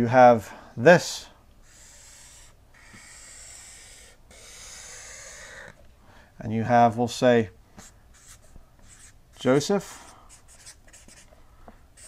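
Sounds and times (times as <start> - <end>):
marker rubbing on paper: 1.6 - 5.7, 7.8 - 9.6, 10.3 - 11.3.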